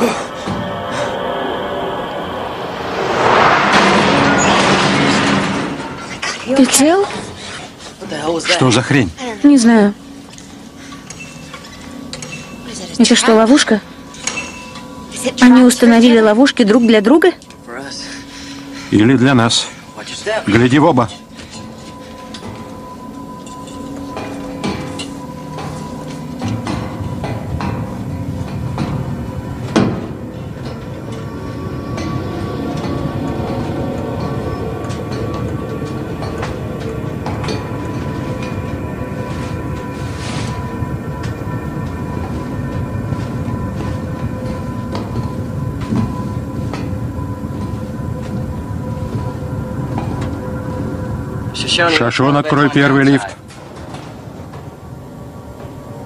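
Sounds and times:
sharp hit: 0.0 - 7.8
low rumbling drone: 0.0 - 56.0
suspenseful film music: 0.0 - 56.0.

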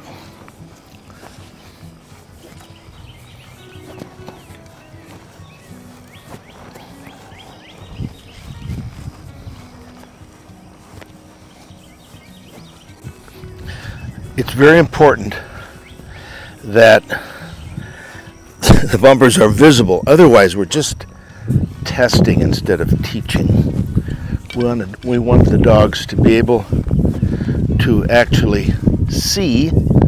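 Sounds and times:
wind on microphone: 6.6 - 10.8, 12.9 - 16.4, 17.1 - 20.1, 21.0 - 30.0.

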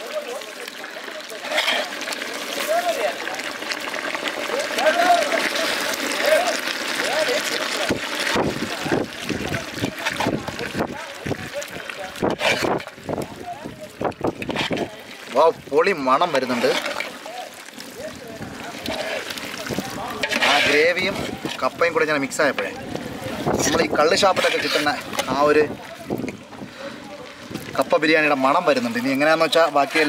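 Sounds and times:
man talking: 15.3 - 30.0.

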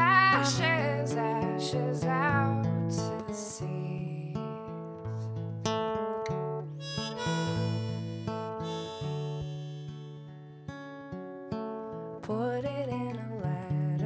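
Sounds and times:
strummed acoustic guitar: 0.0 - 14.0
harmonica long held notes: 6.8 - 10.6.

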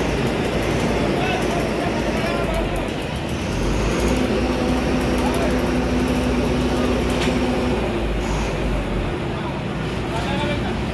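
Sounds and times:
road roller engine rumbling: 0.0 - 10.9.

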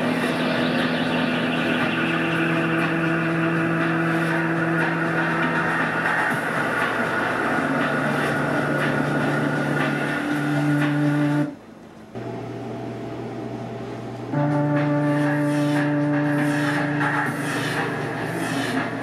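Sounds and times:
song with held steady tones: 0.0 - 19.0.

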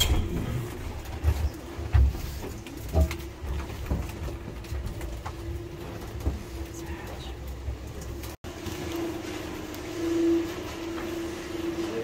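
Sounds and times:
machinery humming with low rumble: 0.0 - 12.0.

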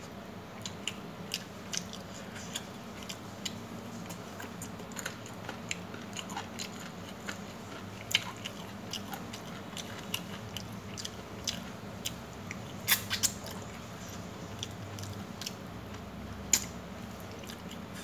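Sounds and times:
person chewing food: 0.6 - 18.0.

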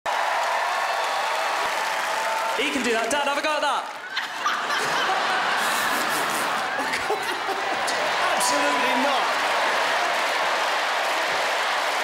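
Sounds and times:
audience clapping: 0.0 - 12.0
audience cheering: 0.1 - 12.0.

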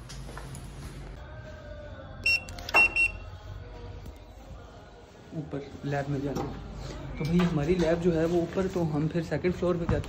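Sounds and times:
short high-pitched beeps: 2.2 - 3.2.

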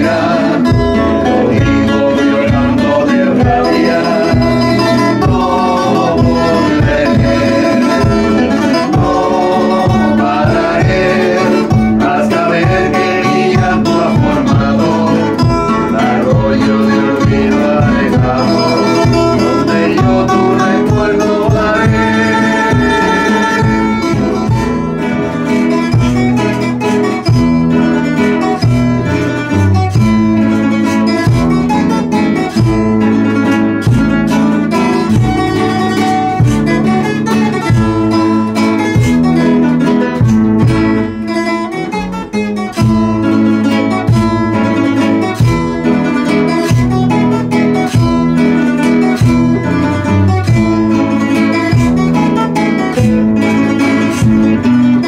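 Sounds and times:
classical guitars strummed: 0.0 - 55.0.

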